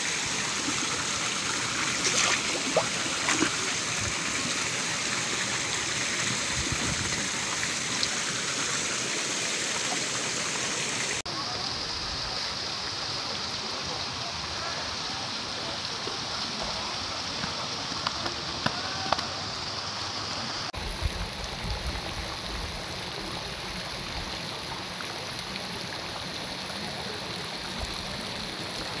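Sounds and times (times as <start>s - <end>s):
running water rushing: 0.0s - 29.0s.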